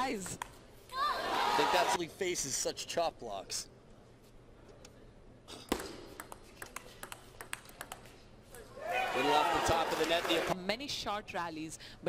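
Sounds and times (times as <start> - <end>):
table tennis ball hits: 5.6 - 8.1.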